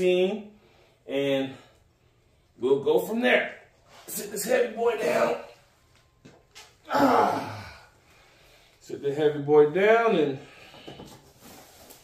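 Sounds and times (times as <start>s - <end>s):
man exhaling with effort: 6.9s - 8.0s.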